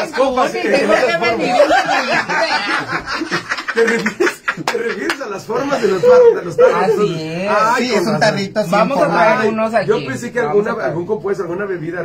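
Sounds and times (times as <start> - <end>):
people laughing: 0.0 - 7.1
people talking: 0.0 - 12.0.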